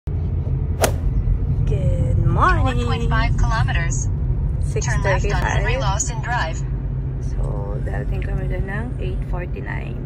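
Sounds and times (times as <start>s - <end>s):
car cabin road rumble: 0.1s - 10.0s
sharp swish: 0.8s - 1.2s.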